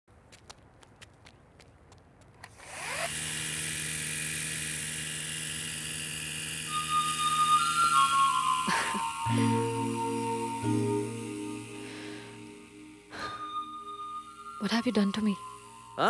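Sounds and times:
toy helicopter motor whine: 2.5s - 16.0s
music tones: 4.4s - 16.0s.

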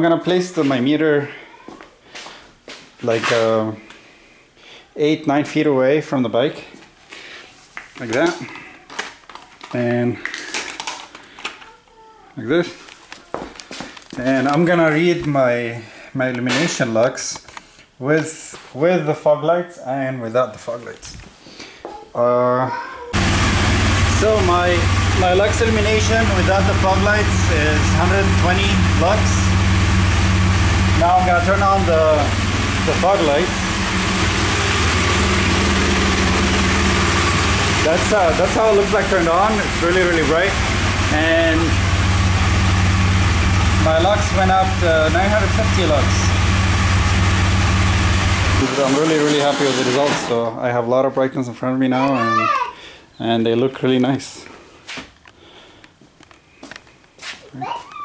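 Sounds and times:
motorcycle engine idling: 23.2s - 48.7s.

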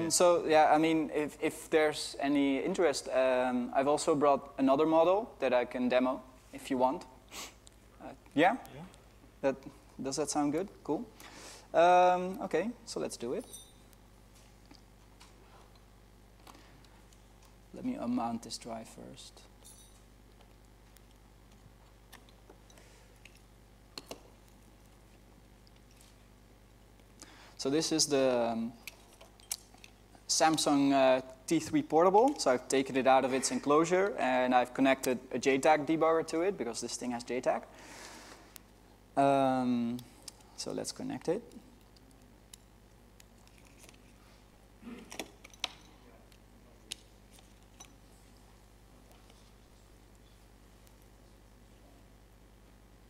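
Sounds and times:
low room hum: 0.0s - 53.0s.

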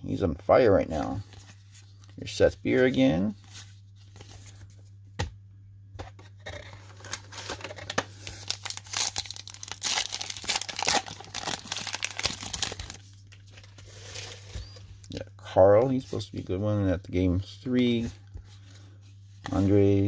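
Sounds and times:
low steady hum: 0.0s - 20.0s
foil wrapper tearing and crinkling: 7.0s - 13.1s.

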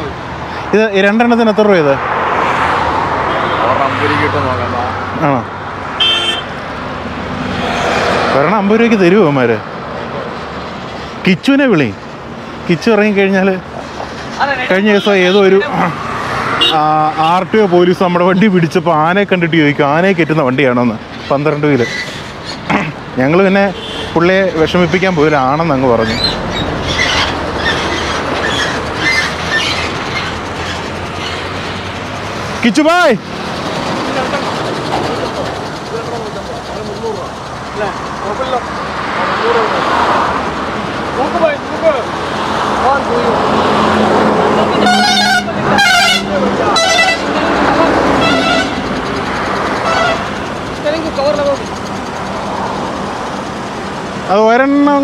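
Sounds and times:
voices: 0.0s - 6.8s, 7.4s - 55.0s
truck horn toots: 6.0s - 6.6s, 23.7s - 24.2s, 44.6s - 49.0s, 49.8s - 50.4s.

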